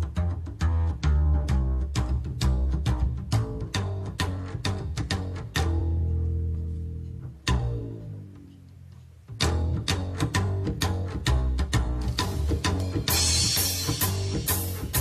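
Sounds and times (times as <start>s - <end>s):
bowed double bass: 0.0s - 15.0s
plucked double bass: 0.0s - 15.0s.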